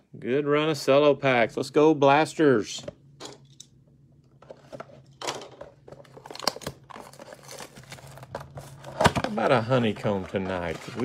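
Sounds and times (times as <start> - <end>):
wrapper crinkling: 6.0 - 11.0.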